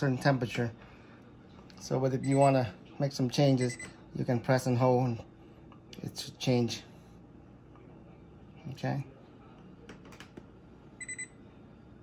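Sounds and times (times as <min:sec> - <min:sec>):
refrigerator control panel beeps: 0:02.2 - 0:02.6, 0:03.6 - 0:04.0, 0:11.0 - 0:11.4.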